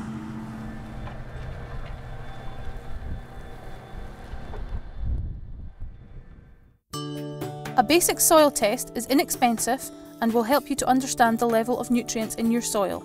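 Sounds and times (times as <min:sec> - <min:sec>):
tractor engine droning: 0:00.0 - 0:06.1.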